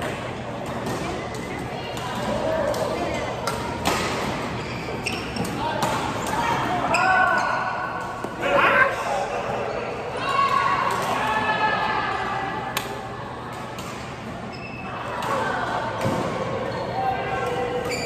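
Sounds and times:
players' voices: 0:00.0 - 0:18.0
rackets hitting shuttlecock: 0:00.6 - 0:04.5.

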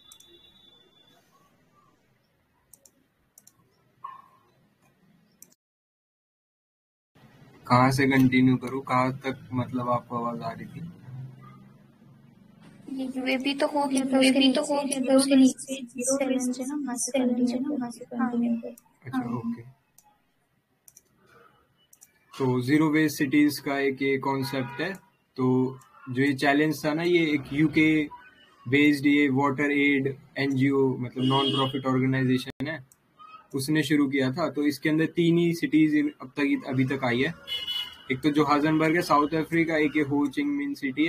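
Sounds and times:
computer mouse clicks: 0:02.7 - 0:04.2, 0:20.8 - 0:22.2.

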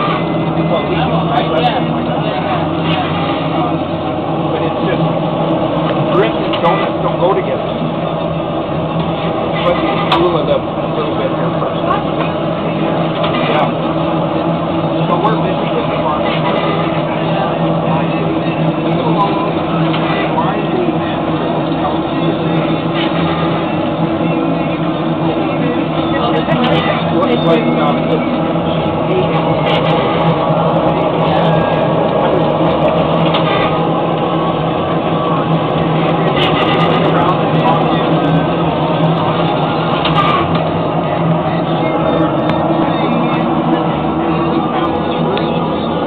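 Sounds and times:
faint background voices: 0:00.0 - 0:46.0
mechanical drone: 0:00.0 - 0:46.0.

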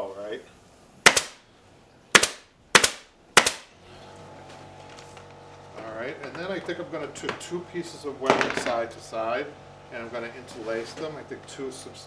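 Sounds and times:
pneumatic staple gun firing: 0:01.0 - 0:01.4, 0:02.1 - 0:03.7.

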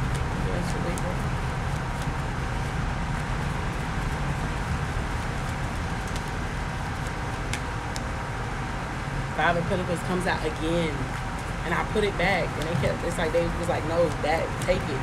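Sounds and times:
cards being shuffled: 0:00.0 - 0:08.1
low rumble with hiss: 0:00.0 - 0:15.0.

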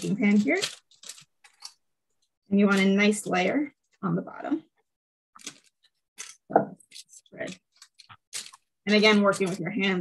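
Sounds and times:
parchment paper rustling: 0:00.0 - 0:04.0, 0:05.4 - 0:10.0.

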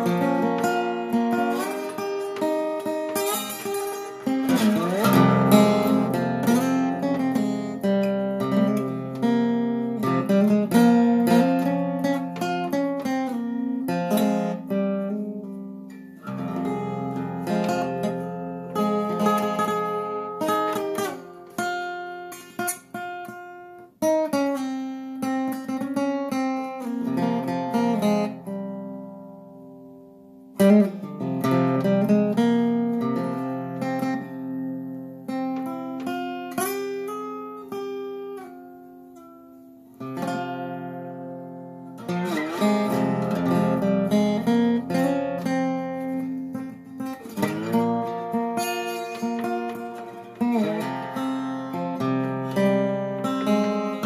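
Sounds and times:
resonator guitar playing: 0:00.0 - 0:54.0.

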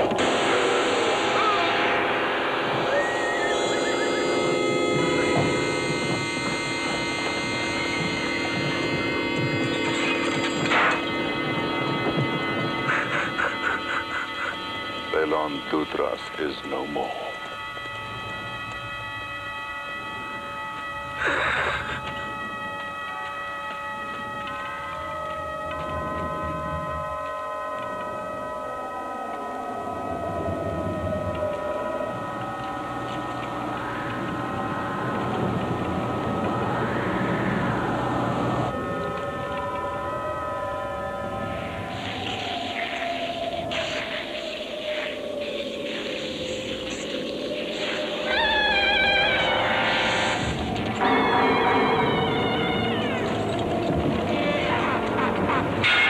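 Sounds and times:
hissing flickering texture: 0:00.0 - 0:19.4, 0:41.3 - 0:56.0
eerie droning film score: 0:00.0 - 0:56.0
slow pitch glides: 0:00.0 - 0:56.0.

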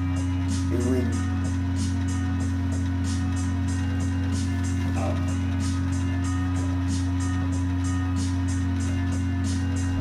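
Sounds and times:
background music with steady beat: 0:00.0 - 0:10.0
constant low hum: 0:00.0 - 0:10.0.

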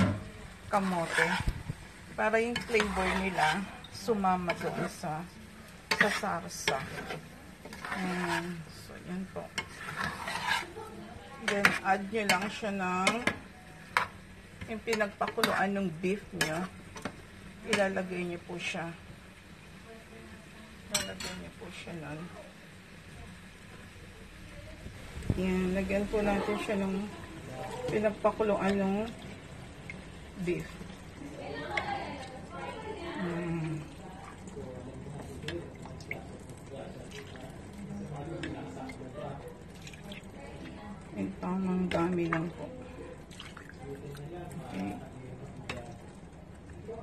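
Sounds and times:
liquid pouring and dripping: 0:33.9 - 0:37.9, 0:38.8 - 0:40.8, 0:42.7 - 0:47.0.

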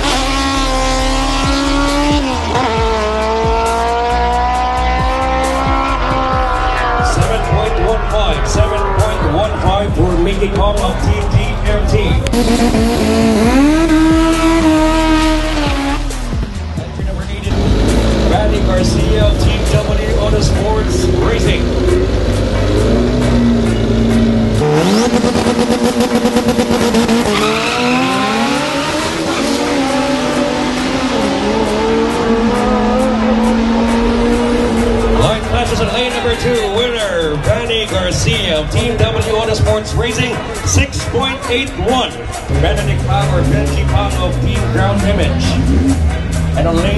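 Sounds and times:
background music: 0:00.0 - 0:46.9
race car engines revving: 0:00.0 - 0:46.9
tyre squeal: 0:27.2 - 0:28.6.

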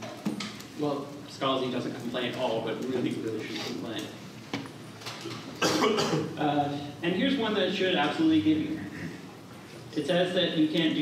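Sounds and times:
person coughing: 0:05.6 - 0:06.4.

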